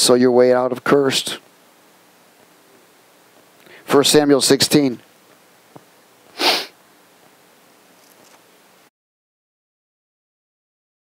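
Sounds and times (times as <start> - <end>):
man's sharp burst of breath: 6.3 - 6.8.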